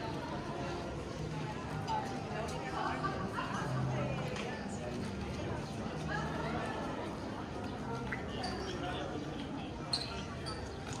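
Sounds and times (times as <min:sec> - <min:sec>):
background noise: 0:00.0 - 0:11.0.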